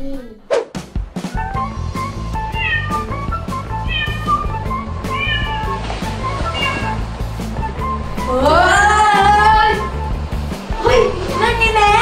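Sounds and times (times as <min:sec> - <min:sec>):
music with steady beat: 0:00.7 - 0:12.0
kitten meowing: 0:02.5 - 0:03.2, 0:03.8 - 0:05.8, 0:06.4 - 0:07.0.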